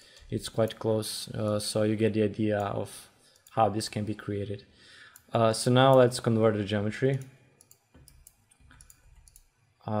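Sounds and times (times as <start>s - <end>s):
computer mouse clicks: 7.1s - 9.5s.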